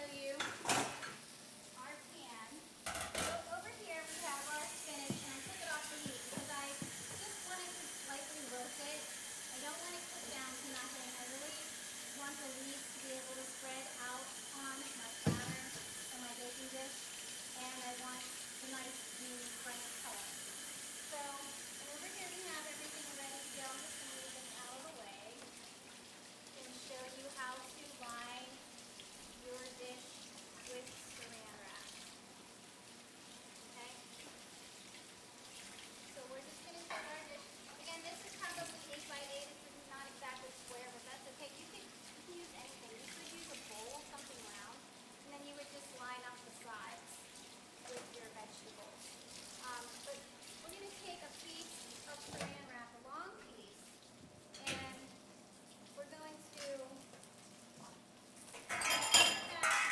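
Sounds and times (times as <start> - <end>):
pans and utensils clanking: 0.4 - 1.2, 2.8 - 3.5, 5.1 - 7.5, 58.5 - 59.9
tap running into sink: 4.9 - 7.7, 15.1 - 16.1.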